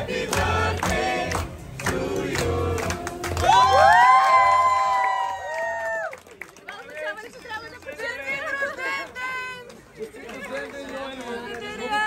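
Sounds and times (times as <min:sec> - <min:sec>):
group of people singing: 0:00.0 - 0:03.6
people cheering: 0:03.2 - 0:06.6.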